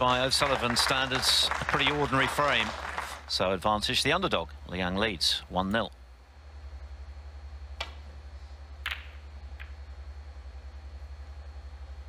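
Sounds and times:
low steady hum: 0:00.0 - 0:12.0
cue striking ball: 0:08.8 - 0:09.8
snooker balls clicking: 0:08.8 - 0:09.8.

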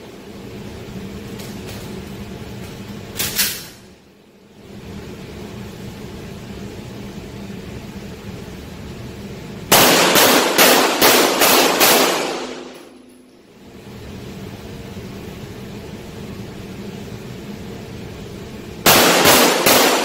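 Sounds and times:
pistol shots echoing indoors: 0:09.7 - 0:13.4, 0:18.8 - 0:20.0.

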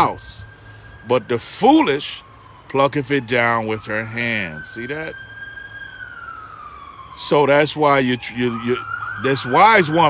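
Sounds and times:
distant siren wailing: 0:00.0 - 0:10.0.

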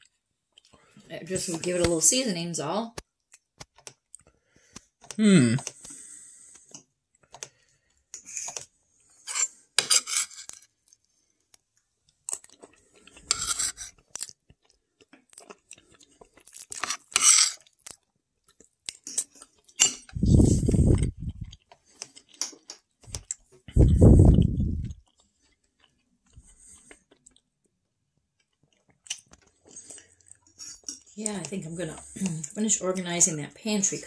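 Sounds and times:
spoon scraping on plate: 0:08.2 - 0:10.6, 0:13.2 - 0:14.0, 0:16.8 - 0:17.7, 0:30.5 - 0:31.1
eating sounds: 0:12.2 - 0:27.5, 0:28.4 - 0:32.8
low rumble: 0:20.1 - 0:21.5.

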